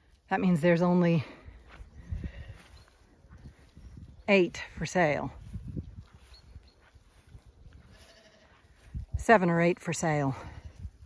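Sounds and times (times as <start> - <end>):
faint lamb bleat: 7.8 - 8.6.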